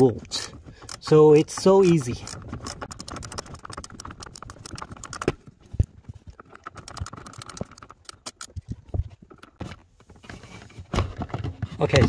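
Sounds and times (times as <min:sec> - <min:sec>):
ratchet wrench clicking: 0:00.8 - 0:05.4.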